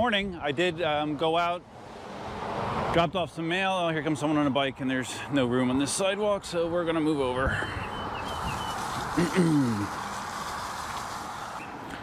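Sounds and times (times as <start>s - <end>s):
air rushing and wheel rolling: 7.4s - 12.0s.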